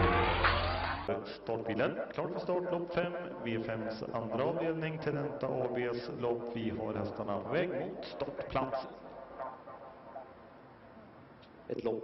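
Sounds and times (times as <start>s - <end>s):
racetrack broadcast background noise: 0.0s - 12.0s.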